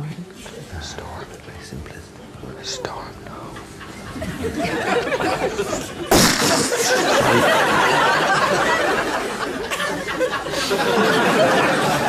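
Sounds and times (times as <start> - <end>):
person whispering softly: 0.1 - 3.6.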